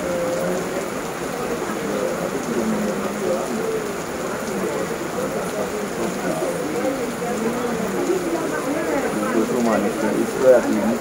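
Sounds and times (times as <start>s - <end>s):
heavy rain on paving and trees: 0.0s - 11.0s.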